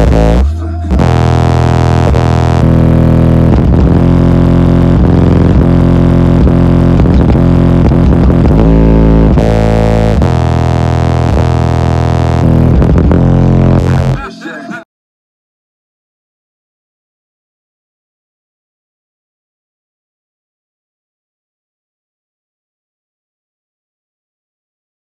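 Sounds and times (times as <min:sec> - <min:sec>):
loud rap bass through subwoofers: 0:00.0 - 0:14.8.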